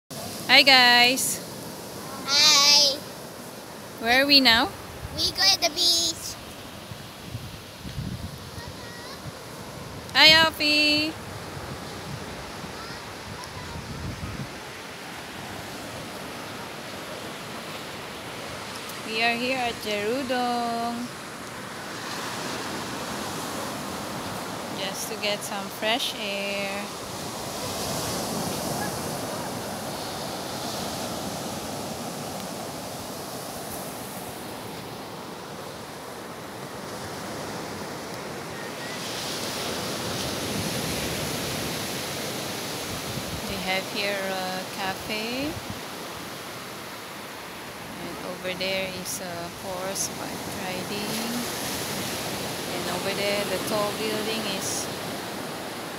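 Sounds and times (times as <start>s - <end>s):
waves breaking on beach: 0.1s - 55.9s.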